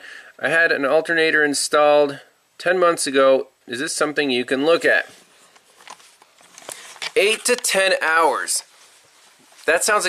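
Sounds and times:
camera handling rustling: 0:05.4 - 0:07.8.

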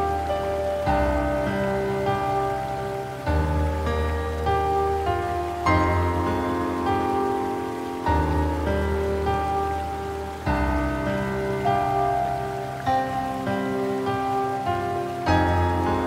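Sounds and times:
gentle solo piano music: 0:00.0 - 0:16.0.

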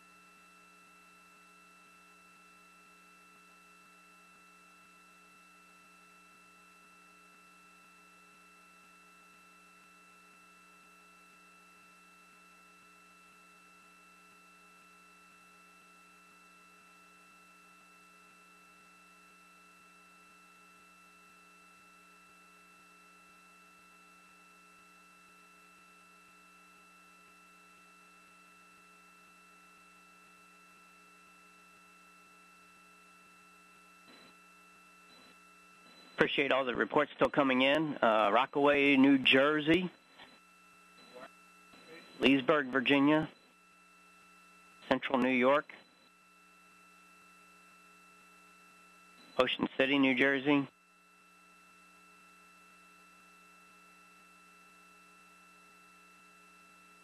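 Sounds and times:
faint electrical hum: 0:00.0 - 0:57.0.

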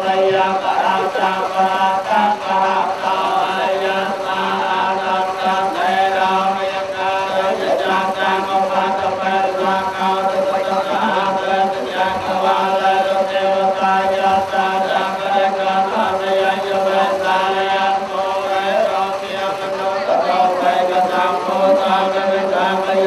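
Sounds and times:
monks chanting in unison: 0:00.0 - 0:23.0.

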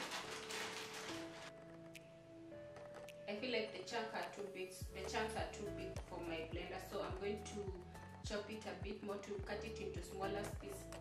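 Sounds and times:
plastic bag rustling: 0:00.0 - 0:01.5.

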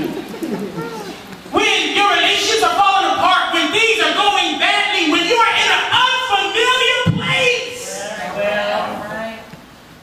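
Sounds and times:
man preaching through a microphone: 0:01.5 - 0:09.4.

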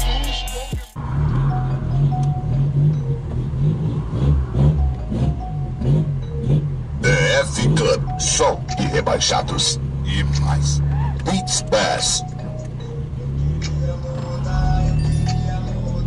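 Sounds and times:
rapped vocals: 0:00.0 - 0:01.0, 0:07.0 - 0:12.4, 0:13.4 - 0:16.0
bass-heavy rap music: 0:00.0 - 0:16.0.

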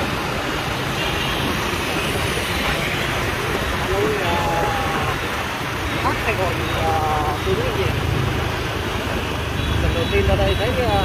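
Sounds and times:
vehicle driving rumble: 0:00.0 - 0:11.0
faint voices talking: 0:02.3 - 0:08.5.

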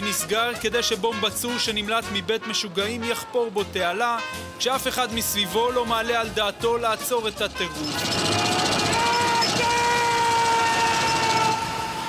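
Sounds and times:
vehicle horn blast: 0:07.6 - 0:12.0.

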